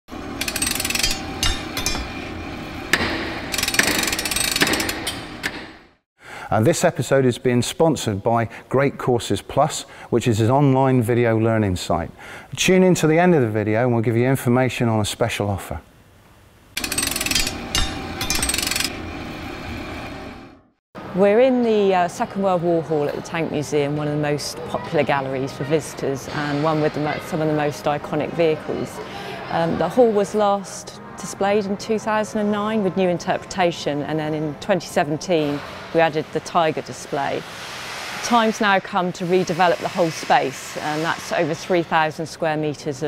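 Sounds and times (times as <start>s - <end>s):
steady ringing hum: 0.1s - 5.4s, 16.8s - 20.6s
power tool rattling: 0.2s - 5.7s, 16.8s - 19.0s
sharp metallic strikes: 0.2s - 5.8s
ratchet clicking: 0.4s - 2.2s, 2.9s - 5.6s, 16.8s - 19.0s.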